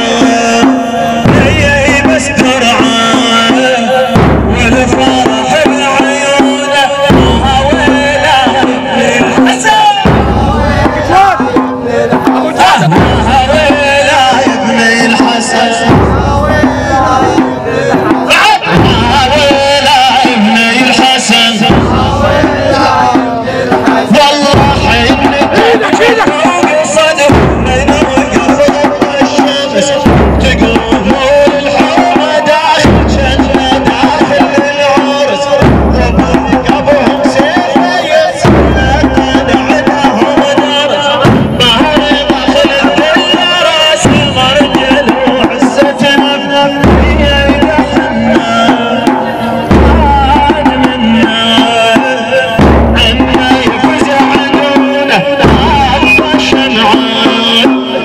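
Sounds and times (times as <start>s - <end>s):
voices chanting over slow beat: 0.0s - 58.0s
deep drum thump: 1.2s - 3.4s, 4.2s - 6.1s, 21.6s - 32.1s, 35.5s - 40.6s, 41.2s - 43.4s, 44.0s - 51.7s, 52.6s - 56.7s.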